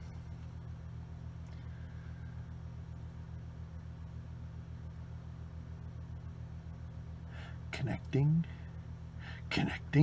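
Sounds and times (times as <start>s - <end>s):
low pulsing hum: 0.0s - 10.0s.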